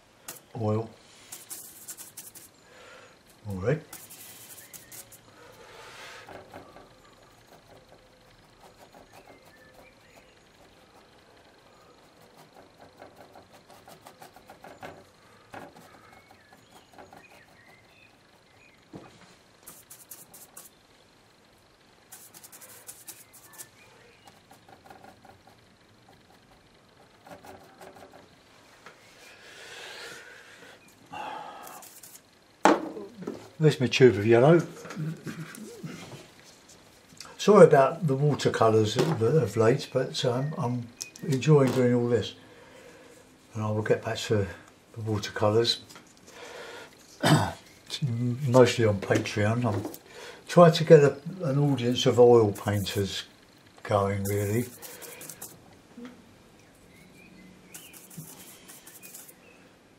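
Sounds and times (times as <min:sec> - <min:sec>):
paint brush scrubbing: 0:01.0 - 0:02.6, 0:03.8 - 0:11.4, 0:12.0 - 0:17.8, 0:19.6 - 0:20.8, 0:22.1 - 0:25.6, 0:31.6 - 0:32.2, 0:51.7 - 0:53.2, 0:53.9 - 0:55.6, 0:57.7 - 0:59.4.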